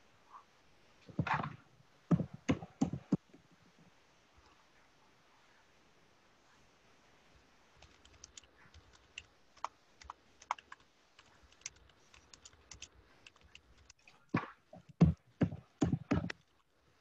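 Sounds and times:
keyboard typing: 0:07.8 - 0:14.0.

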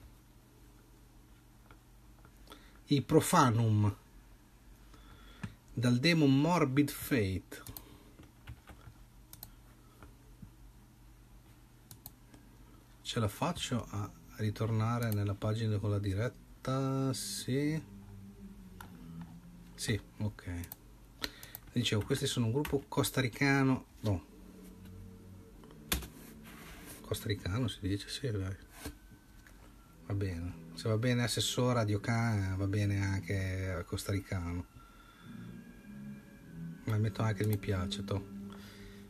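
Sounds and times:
low steady hum: 0:00.0 - 0:39.0
faint computer clicks: 0:07.6 - 0:10.1, 0:20.6 - 0:22.8.

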